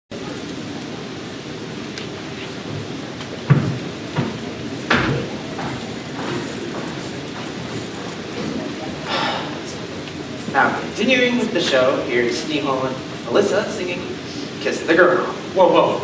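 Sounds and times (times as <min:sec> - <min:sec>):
audience murmuring: 0:00.1 - 0:16.0
sharp knocks: 0:03.5 - 0:05.8.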